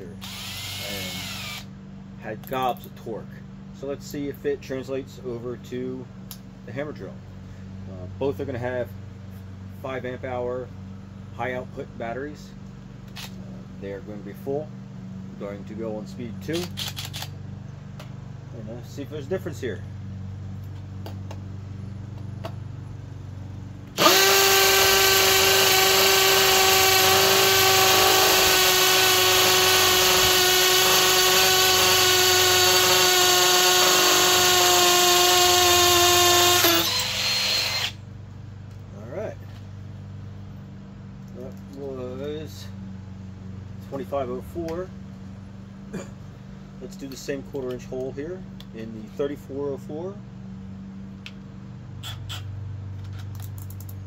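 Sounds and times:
steady low hum: 0.0s - 54.0s
hammer drill boring into concrete: 0.2s - 1.7s, 24.0s - 38.0s.

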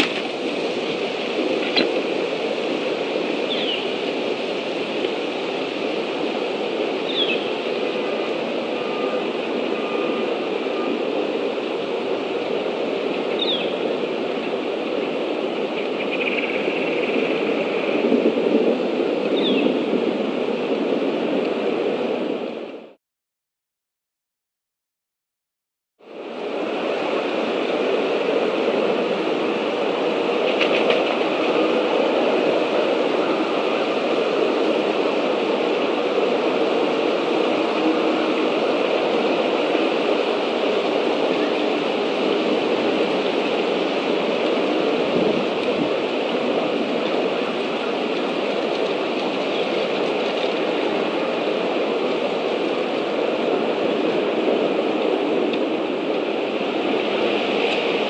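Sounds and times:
steady outdoor noise: 0.0s - 23.0s, 26.0s - 58.0s.

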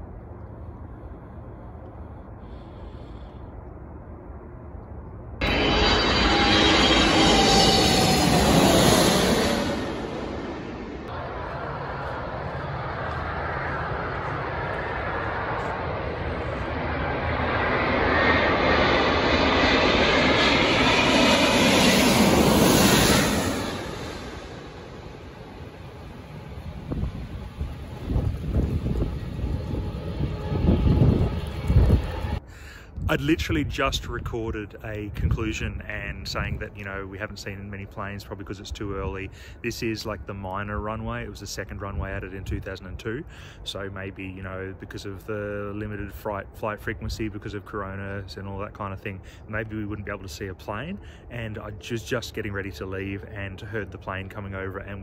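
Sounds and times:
jet airliner passing overhead: 0.0s - 55.0s.

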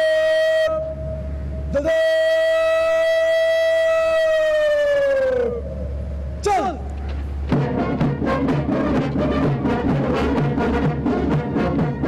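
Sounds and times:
person shouting drill command: 1.7s - 4.3s, 6.4s - 6.9s.

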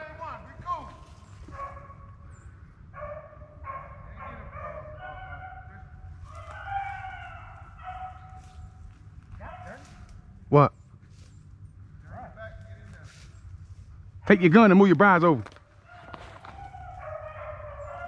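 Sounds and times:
hounds baying: 0.8s - 10.4s, 11.0s - 18.0s.

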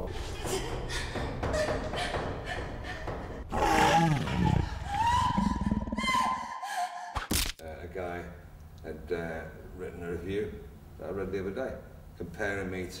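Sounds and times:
long high-pitched scream: 3.7s - 7.1s.

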